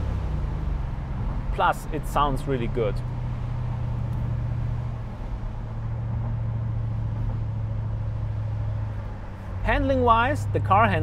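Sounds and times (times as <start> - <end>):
car engine low drone: 0.0 - 11.0
road noise: 0.0 - 11.0.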